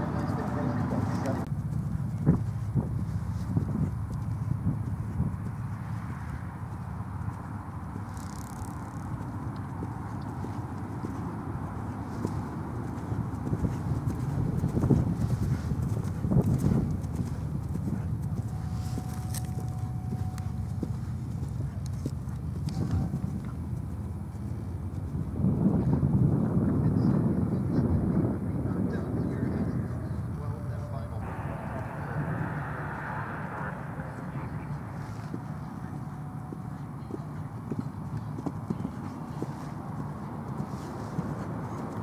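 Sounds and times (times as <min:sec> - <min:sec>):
faint distant voices: 0:00.0 - 0:03.4, 0:25.4 - 0:42.0
low outdoor rumble: 0:00.0 - 0:42.0
horse hoofbeats on grass: 0:01.4 - 0:25.6, 0:35.3 - 0:42.0.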